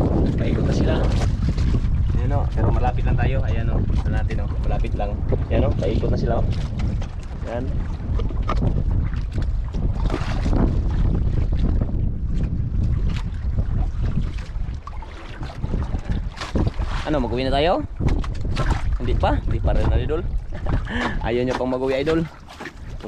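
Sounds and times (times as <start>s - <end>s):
water splashing against hull: 0.0s - 23.0s
wind buffeting microphone: 0.0s - 23.0s.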